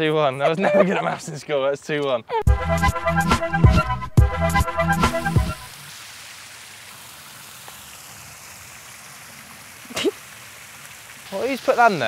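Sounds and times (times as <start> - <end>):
laughter: 0.3 - 1.4
steady outdoor hiss: 5.0 - 12.0.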